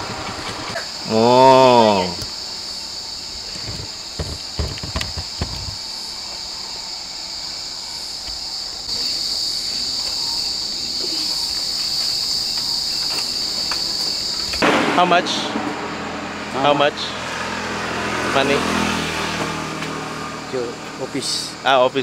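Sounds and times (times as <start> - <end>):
high-pitched insect drone: 0.0 - 15.2
short knocks: 3.6 - 5.8.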